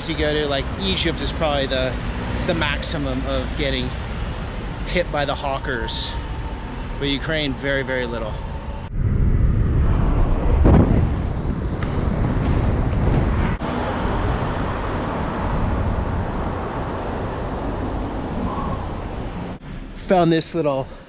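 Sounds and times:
city street traffic: 0.0s - 21.0s
wind on microphone: 8.5s - 19.6s.

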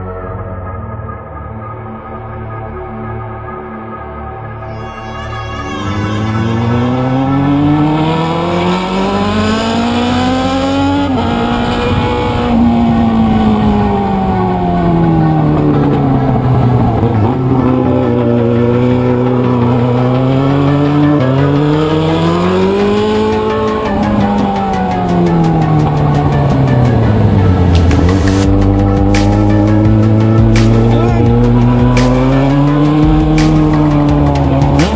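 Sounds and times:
gear changes: 5.8s - 34.9s
motorcycle engine accelerating: 5.8s - 34.9s.

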